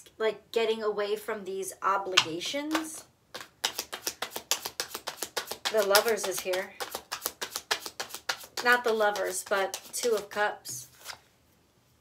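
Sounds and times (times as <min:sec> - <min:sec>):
cards being shuffled: 0:02.2 - 0:11.3.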